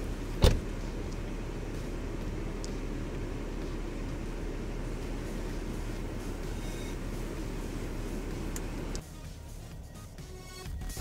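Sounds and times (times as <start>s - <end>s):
steady low rumble: 0.0s - 9.9s.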